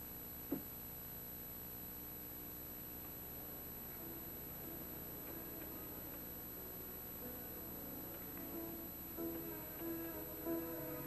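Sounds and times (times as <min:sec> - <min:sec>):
faint hiss: 0:00.0 - 0:11.0
soft sparse music notes: 0:03.8 - 0:11.0.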